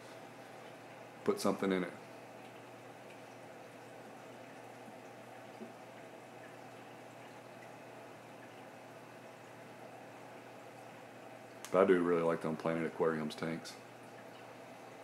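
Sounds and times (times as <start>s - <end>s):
low steady hum: 0.0s - 15.0s
water bubbling and trickling: 2.0s - 11.7s, 13.8s - 15.0s.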